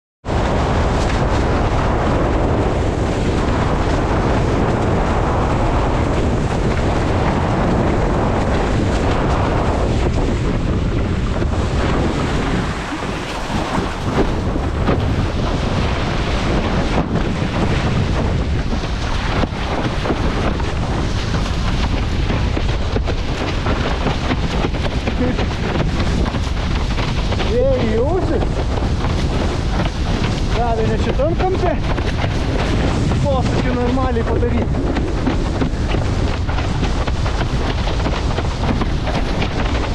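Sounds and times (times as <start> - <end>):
wind buffeting microphone: 0.2 - 39.9
water rushing past board: 0.3 - 39.9.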